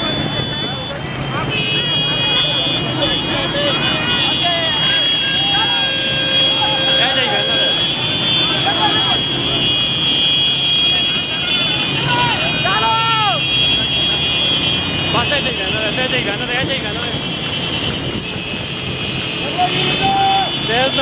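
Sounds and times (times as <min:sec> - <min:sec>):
small motorcycles running: 0:00.0 - 0:21.0
men shouting: 0:02.2 - 0:09.8, 0:10.8 - 0:16.9, 0:19.4 - 0:21.0.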